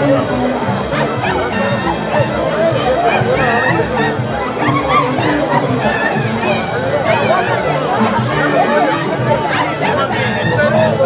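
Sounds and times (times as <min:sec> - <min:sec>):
crowd chatter: 0:00.0 - 0:11.0
music: 0:00.0 - 0:11.0.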